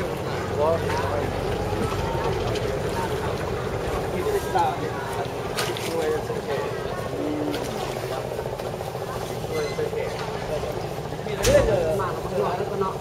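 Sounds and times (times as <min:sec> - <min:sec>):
boat engine running: 0:00.0 - 0:13.0
people talking: 0:00.0 - 0:13.0.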